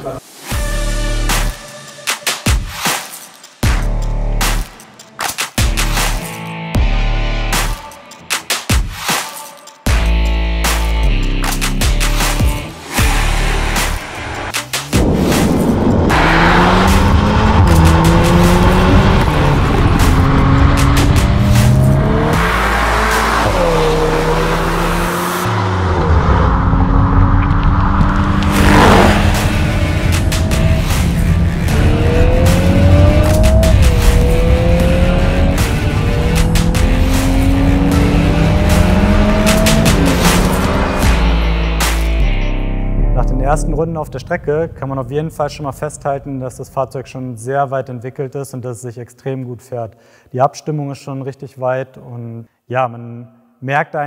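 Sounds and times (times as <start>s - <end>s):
background music: 0.0s - 48.0s
car engine revving at full throttle: 12.8s - 42.0s.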